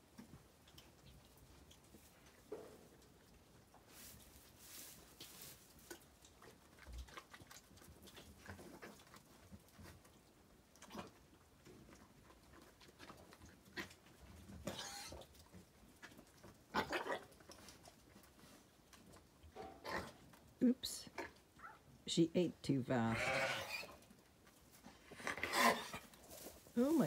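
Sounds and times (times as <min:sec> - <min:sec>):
sheep chewing hay: 0:00.0 - 0:19.6, 0:23.9 - 0:27.0
rustling and crunching of hay: 0:00.1 - 0:10.3, 0:24.0 - 0:27.0.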